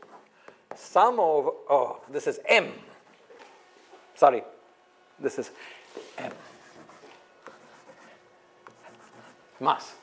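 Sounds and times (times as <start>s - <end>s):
chalk scratching on chalkboard: 5.9s - 10.0s
chalk tapping on board: 6.0s - 9.4s.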